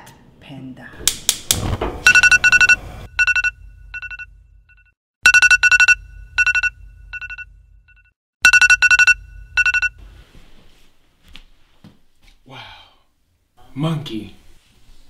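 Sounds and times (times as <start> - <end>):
phone alarm beeps: 2.1 - 4.3, 5.2 - 7.5, 8.4 - 10.0.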